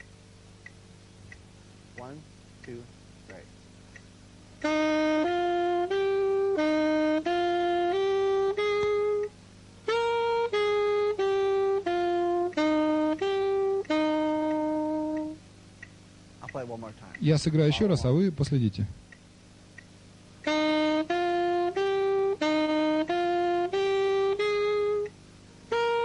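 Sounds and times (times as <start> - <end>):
saxophone playing simple melody: 4.6 - 16.8, 20.1 - 26.0.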